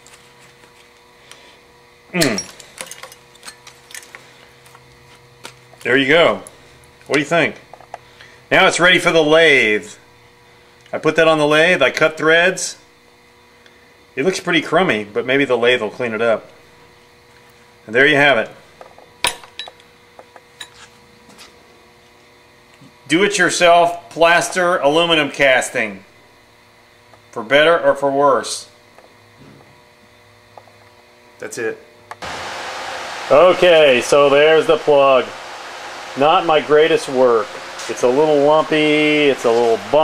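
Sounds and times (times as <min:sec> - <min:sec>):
steady low hum: 0:00.0 - 0:40.0
clicks and clinks of handled pieces: 0:02.2 - 0:04.8
man talking: 0:33.3 - 0:35.4, 0:36.2 - 0:40.0.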